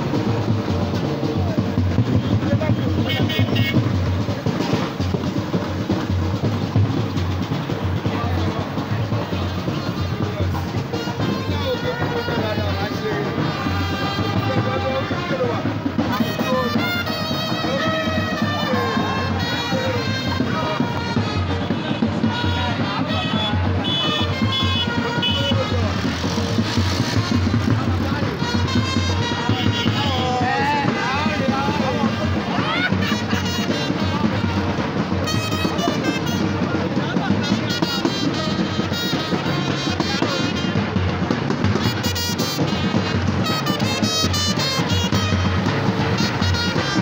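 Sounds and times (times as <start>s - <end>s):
crowd voices: 0.0s - 47.0s
music with drumbeat: 0.0s - 47.0s
vehicle noise: 0.0s - 47.0s.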